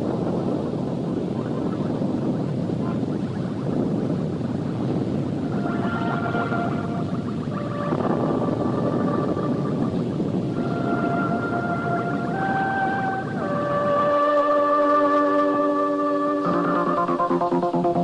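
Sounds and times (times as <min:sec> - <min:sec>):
long held musical notes: 0:04.5 - 0:18.0.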